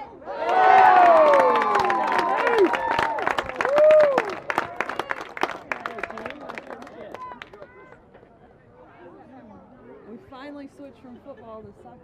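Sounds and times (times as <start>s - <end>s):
crowd cheering and yelling: 0.2s - 5.1s.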